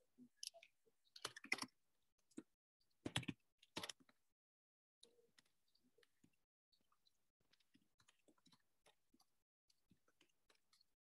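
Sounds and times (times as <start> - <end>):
computer keyboard typing: 3.1 - 4.0.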